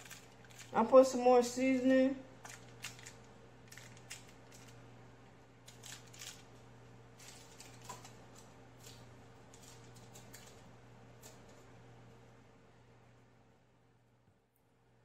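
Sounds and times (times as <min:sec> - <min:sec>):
foil crinkling: 0:00.0 - 0:04.8, 0:05.7 - 0:06.5, 0:07.2 - 0:10.6
low steady hum: 0:00.0 - 0:15.0.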